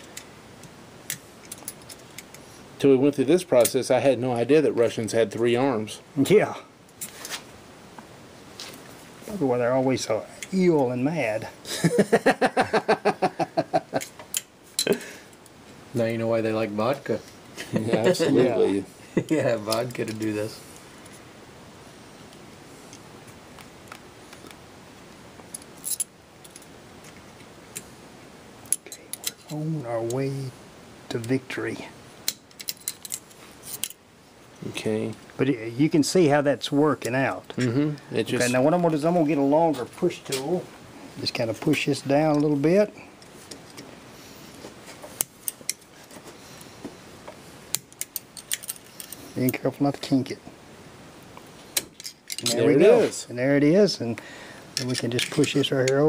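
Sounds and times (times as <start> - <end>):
metallic clicks and scrapes: 32.3 - 34.0, 47.7 - 49.6, 54.8 - 56.0.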